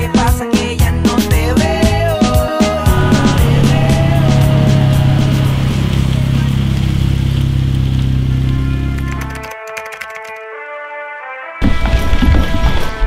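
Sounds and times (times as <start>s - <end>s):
background music: 0.0s - 13.0s
car engine droning: 2.9s - 9.4s.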